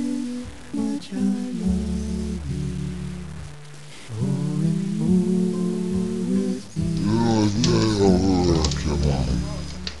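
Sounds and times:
person's wavering drawn-out voice: 7.0s - 9.6s.

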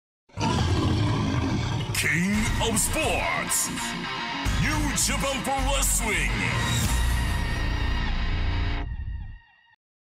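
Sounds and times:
lion roaring: 0.3s - 2.4s.

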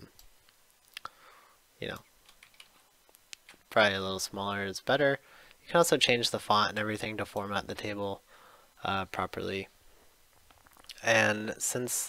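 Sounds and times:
computer mouse clicks: 1.9s - 3.6s.

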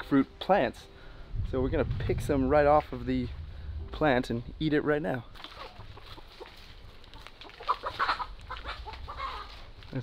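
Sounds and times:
chickens clucking: 5.2s - 9.8s
footsteps on dry leaves: 5.2s - 10.0s
chicken short calls: 7.6s - 9.6s.

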